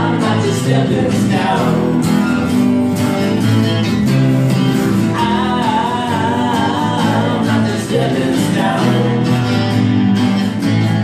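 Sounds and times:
person singing: 0.0 - 2.5, 5.0 - 9.9
electric bass: 0.0 - 11.0
strummed acoustic guitars: 0.0 - 11.0.

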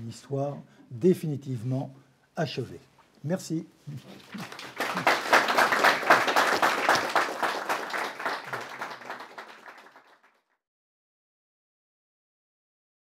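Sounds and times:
audience applauding: 4.0 - 10.4.

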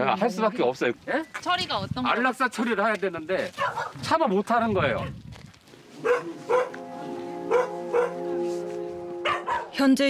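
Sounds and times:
dogs barking: 3.6 - 4.0, 6.0 - 6.8, 7.5 - 8.3, 9.2 - 9.8
soft sustained music chord: 5.8 - 10.0.

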